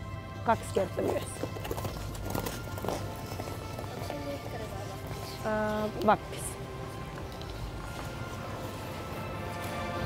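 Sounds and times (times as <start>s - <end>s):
music with sustained tones: 0.0s - 10.0s
skate blades scraping ice: 0.8s - 5.4s.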